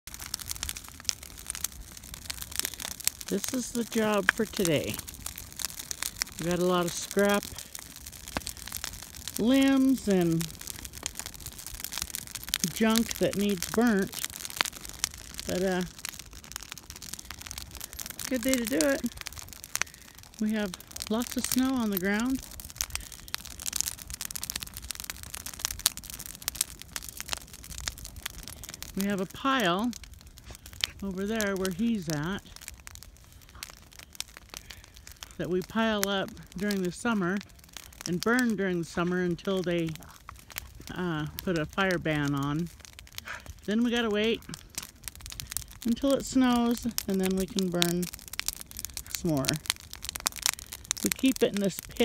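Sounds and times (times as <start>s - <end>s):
brush fire crackling and popping: 0.0s - 52.0s.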